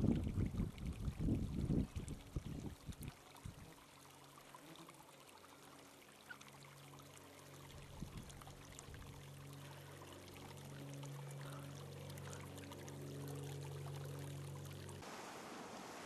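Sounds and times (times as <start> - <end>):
brook trickling over rocks: 0.0 - 15.0.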